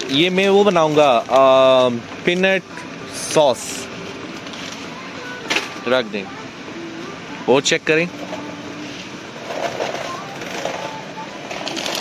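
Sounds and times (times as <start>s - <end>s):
supermarket background noise: 0.0s - 12.0s.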